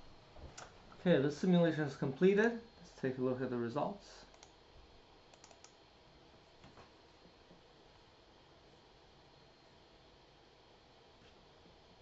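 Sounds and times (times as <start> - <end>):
computer mouse clicks: 4.3 - 4.6, 5.3 - 5.8.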